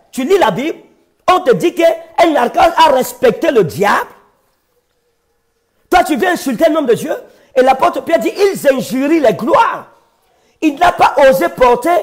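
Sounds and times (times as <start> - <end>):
man speaking: 0.0 - 4.3, 5.9 - 10.0, 10.6 - 12.0.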